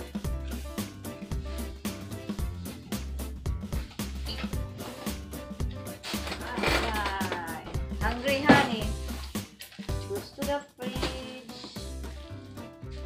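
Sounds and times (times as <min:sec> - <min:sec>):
music with beat and bass line: 0:00.0 - 0:06.1.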